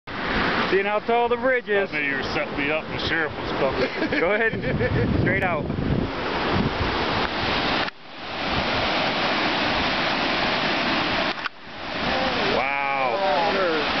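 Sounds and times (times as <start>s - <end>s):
whitewater rapids rushing: 0.1s - 4.4s, 6.1s - 14.0s
wind on microphone: 2.4s - 12.6s
person's voice: 12.0s - 13.9s.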